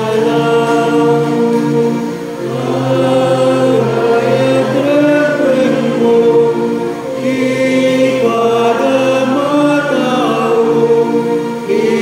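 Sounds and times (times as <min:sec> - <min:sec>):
group singing a hymn in harmony: 0:00.0 - 0:12.0.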